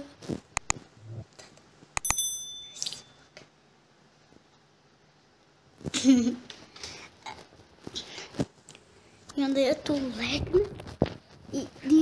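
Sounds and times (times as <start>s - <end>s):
mouse click: 0.6s - 0.8s
bright bell ding: 2.0s - 3.3s.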